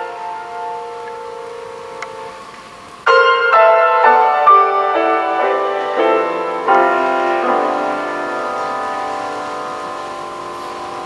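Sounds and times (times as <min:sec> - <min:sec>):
grand piano chord ringing: 0:00.0 - 0:11.0.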